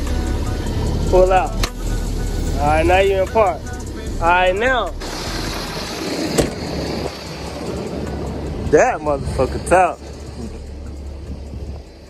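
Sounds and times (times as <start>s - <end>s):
diesel engine running: 0.0s - 12.0s.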